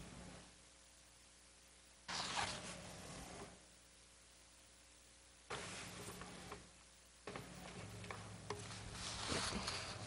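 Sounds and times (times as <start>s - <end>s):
paper rustling: 8.6s - 10.0s.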